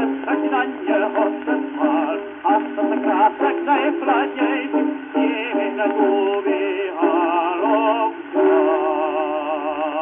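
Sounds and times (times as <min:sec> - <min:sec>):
operatic tenor singing: 0:00.0 - 0:10.0.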